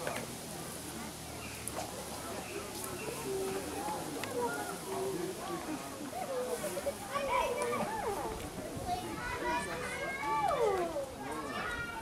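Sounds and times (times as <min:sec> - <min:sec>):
children and people talking: 0:00.0 - 0:12.0.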